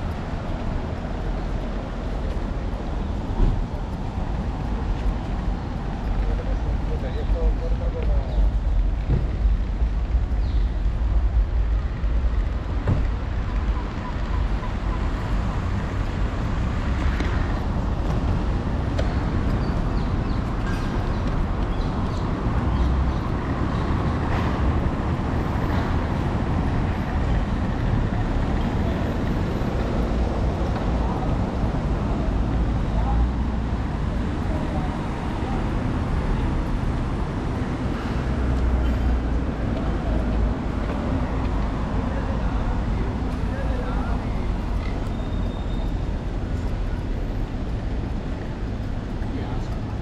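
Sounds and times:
distant road traffic hum: 0:00.0 - 0:50.0.

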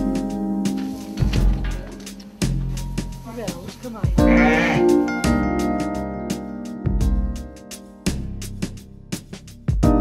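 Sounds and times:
background music: 0:00.0 - 0:10.0
lamb bleating: 0:04.2 - 0:05.1.

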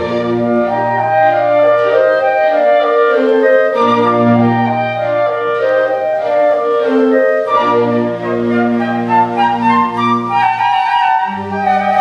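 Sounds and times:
flutes playing melody: 0:00.0 - 0:12.0
orchestral accompaniment: 0:00.0 - 0:12.0.

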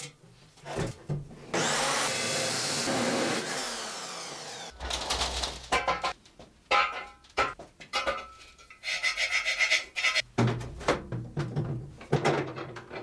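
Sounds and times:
chop saw grinding through steel: 0:01.6 - 0:04.8.

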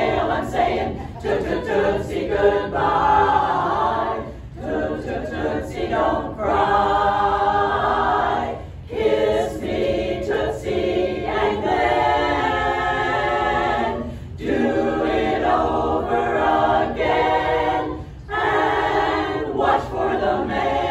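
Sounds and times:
women's chorus singing a cappella: 0:00.0 - 0:20.9.

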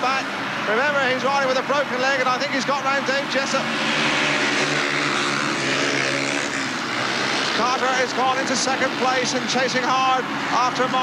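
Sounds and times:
motorcycles racing: 0:00.0 - 0:11.0.

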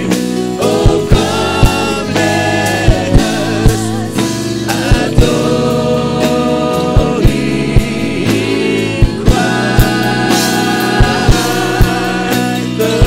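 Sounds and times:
bass guitar: 0:00.0 - 0:13.0
gospel singers: 0:00.0 - 0:13.0
keyboard: 0:00.0 - 0:13.0.

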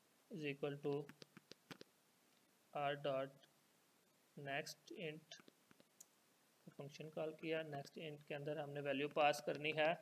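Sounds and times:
person speaking: 0:00.3 - 0:02.0, 0:02.7 - 0:03.6, 0:04.3 - 0:10.0.

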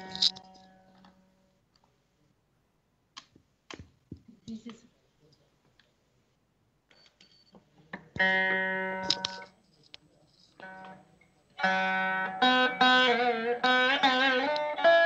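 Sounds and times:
plucked string ringing: 0:08.2 - 0:09.3, 0:11.6 - 0:15.0.

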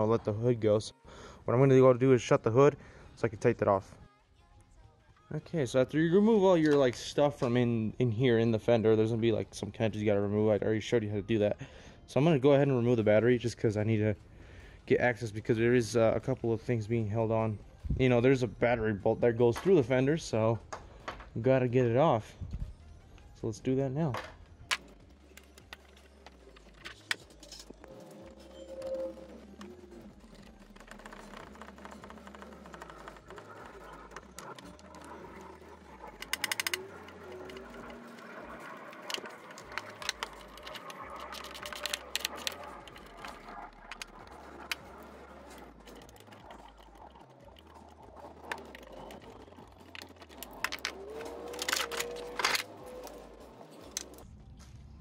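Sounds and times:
ratchet clicks: 0:24.7 - 0:54.2.

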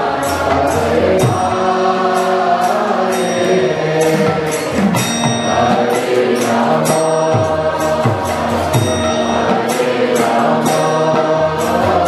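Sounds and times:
bright metallic strokes: 0:00.0 - 0:12.0
sustained held tones: 0:00.0 - 0:12.0
voices chanting: 0:00.0 - 0:12.0.

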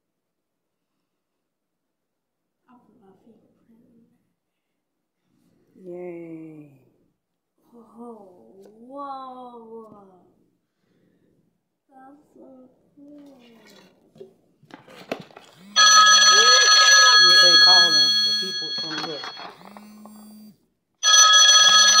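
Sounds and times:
mobile phone ringtone: 0:15.8 - 0:20.0, 0:21.0 - 0:22.0.

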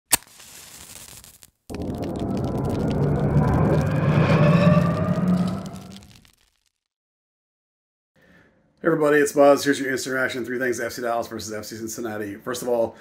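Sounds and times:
deep rumbling swell with rising tones: 0:01.7 - 0:06.2.

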